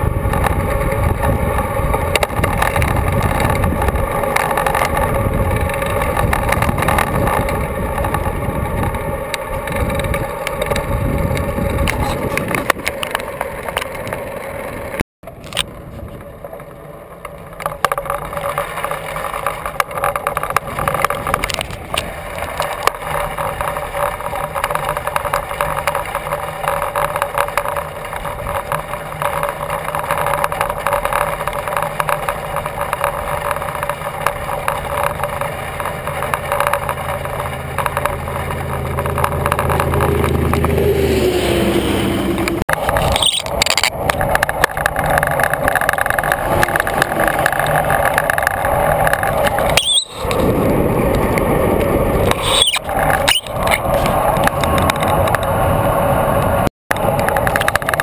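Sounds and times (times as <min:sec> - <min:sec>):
motor vehicle passing: 0:00.0 - 0:58.0
wind and bicycle tyre noise: 0:00.0 - 0:58.0.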